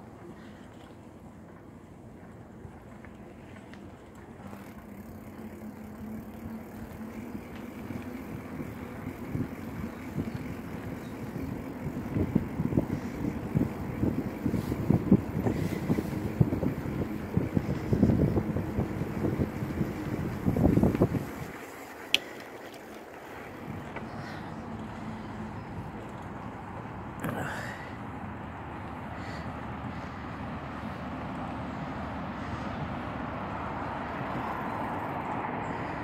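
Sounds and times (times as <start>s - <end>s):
wind buffeting microphone: 4.6s - 27.0s.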